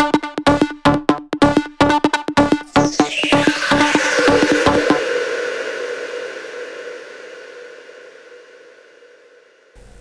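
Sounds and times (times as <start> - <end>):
white noise effect: 2.7 - 10.0.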